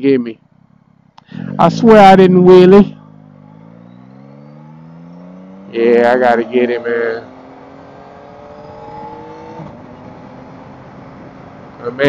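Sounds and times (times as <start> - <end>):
motorcycle engine pulling away: 0.4 - 12.0.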